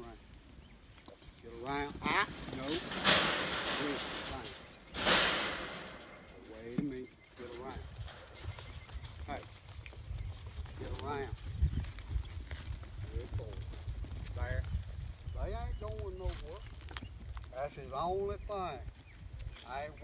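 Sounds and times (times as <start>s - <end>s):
hoofbeats on dirt: 0.0s - 20.0s.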